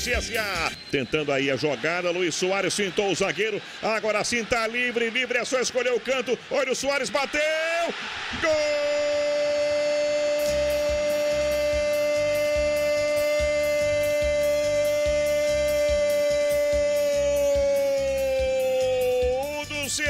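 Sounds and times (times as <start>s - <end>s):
commentator shouting goal cry: 1.7s - 10.1s, 15.9s - 20.0s.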